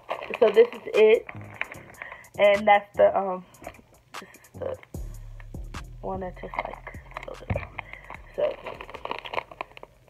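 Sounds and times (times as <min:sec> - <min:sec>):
foil candy packet crinkling: 0:00.0 - 0:02.4, 0:06.3 - 0:10.0.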